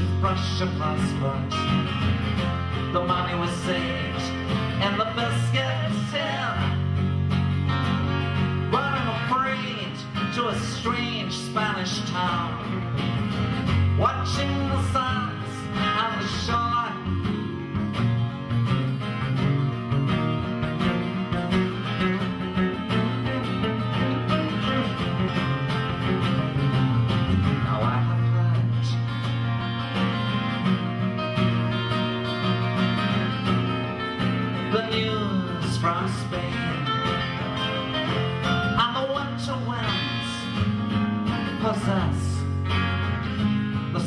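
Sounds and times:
acoustic guitars playing folk: 0.0s - 44.0s.

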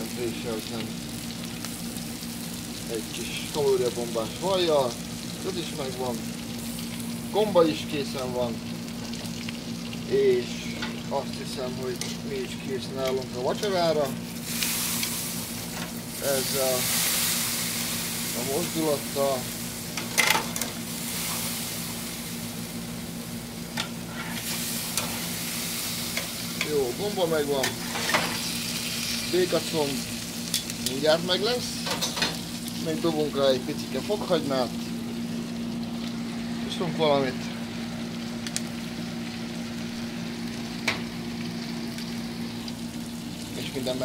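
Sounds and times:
food sizzling on grill: 0.0s - 44.0s
low steady hum: 0.0s - 44.0s.

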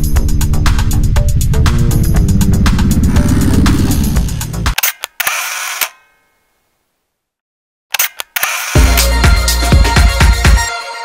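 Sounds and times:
hissing swoosh: 1.7s - 4.8s
sharp clicks: 4.7s - 6.0s, 7.9s - 8.8s.

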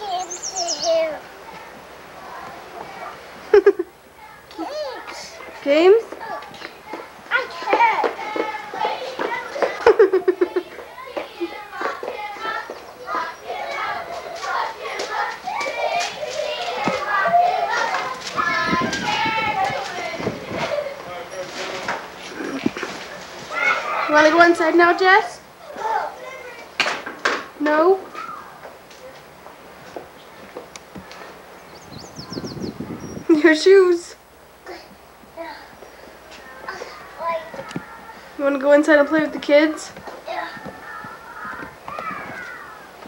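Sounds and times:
bird chirping: 0.0s - 1.1s, 31.6s - 33.3s
children chattering and calling out: 0.0s - 43.0s
wind rumble on microphone: 18.2s - 20.9s, 31.7s - 33.6s.

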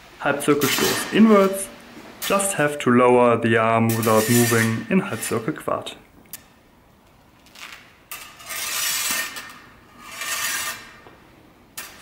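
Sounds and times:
saber blades scraping: 0.6s - 2.6s, 3.9s - 5.6s, 8.1s - 11.0s.

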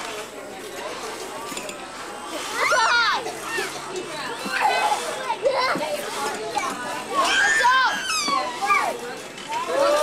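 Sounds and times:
young children calling and chattering: 0.0s - 10.0s.

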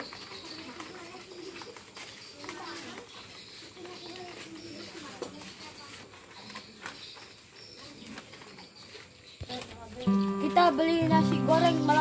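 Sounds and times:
distant murmur of voices: 0.0s - 12.0s.

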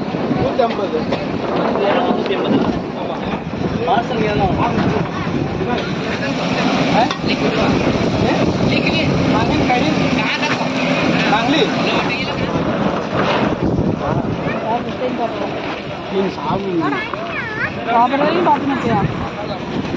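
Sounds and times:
indistinct chatter of voices: 0.0s - 19.9s
noisy background: 0.0s - 19.9s.

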